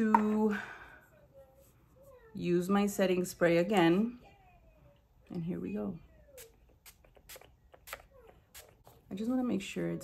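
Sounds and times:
spray bottle spritzes: 0:06.4 - 0:08.9.

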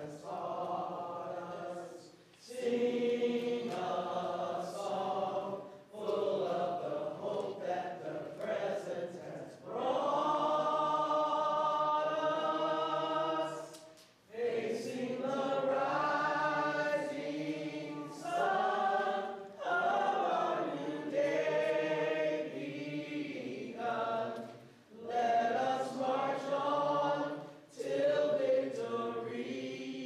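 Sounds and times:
choir singing in harmony: 0:00.0 - 0:30.0.

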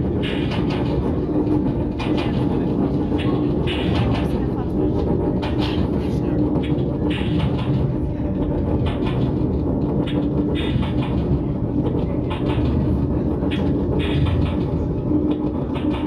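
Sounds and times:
low electronic noise rumble: 0:00.0 - 0:16.0
steady drone: 0:00.0 - 0:16.0.

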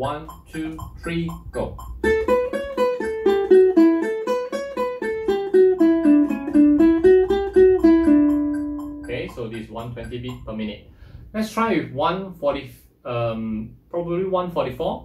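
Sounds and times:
ukulele plucked single notes: 0:00.2 - 0:10.7.

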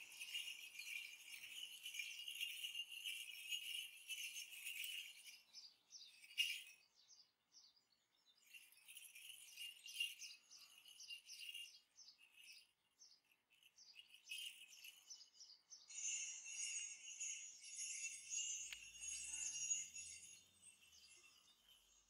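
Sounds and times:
leg bells jingling: 0:00.0 - 0:07.2, 0:08.4 - 0:22.0.

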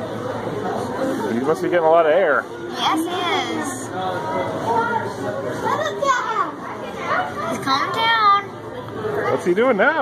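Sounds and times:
children's chatter: 0:02.5 - 0:09.8.

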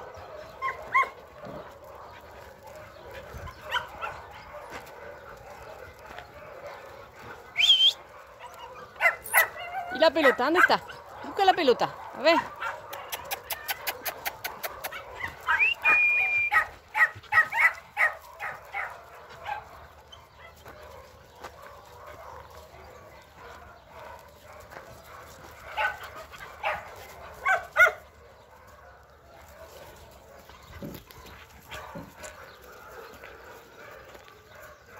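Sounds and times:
dogs barking and yipping: 0:00.0 - 0:34.9.

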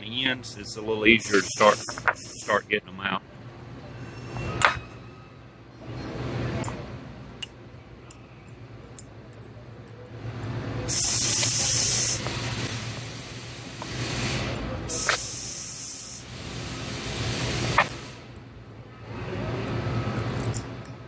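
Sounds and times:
hiss: 0:01.2 - 0:02.7, 0:10.9 - 0:18.3.

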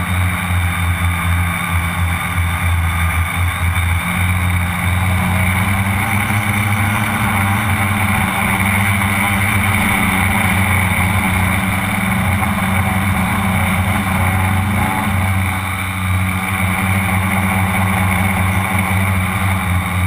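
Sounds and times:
drone motors buzzing: 0:00.0 - 0:20.0.

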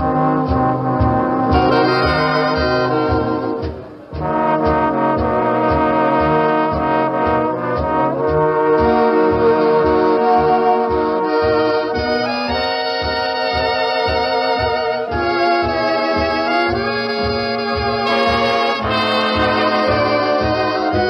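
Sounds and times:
swing big band playing: 0:00.0 - 0:21.0.

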